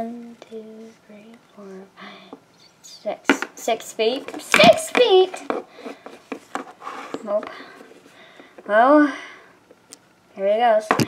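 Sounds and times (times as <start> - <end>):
child speaking: 0.0 - 2.0, 2.8 - 5.5.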